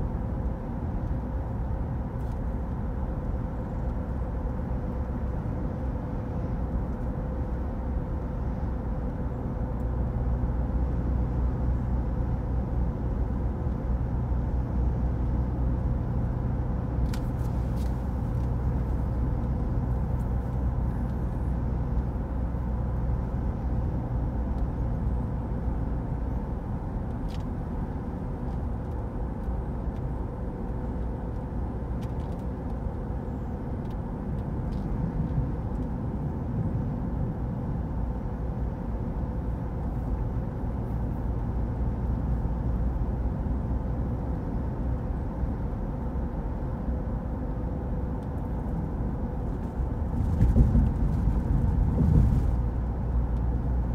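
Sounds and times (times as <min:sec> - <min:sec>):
road and engine rumble in car: 0:00.0 - 0:53.9.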